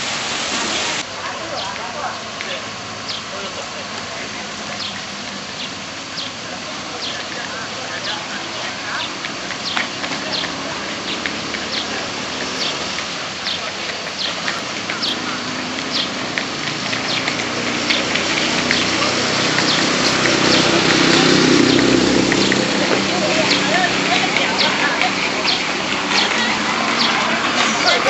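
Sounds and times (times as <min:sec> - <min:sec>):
crowd footsteps shuffling: 0:00.0 - 0:28.0
steady hiss: 0:00.0 - 0:28.0
murmuring voices: 0:00.7 - 0:28.0.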